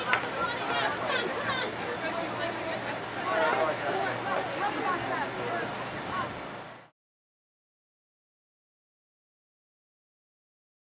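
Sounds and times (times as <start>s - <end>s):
outdoor noise: 0.0s - 6.9s.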